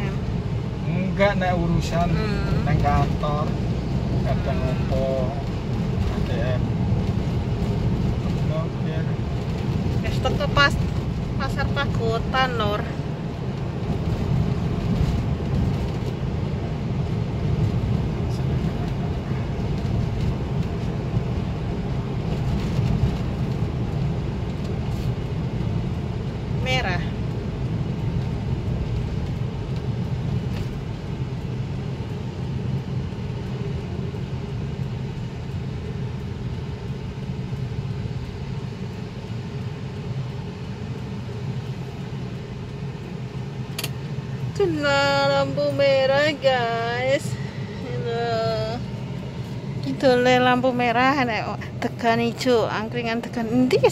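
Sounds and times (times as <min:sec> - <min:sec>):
car engine and tyres rumbling: 0:00.0 - 0:53.9.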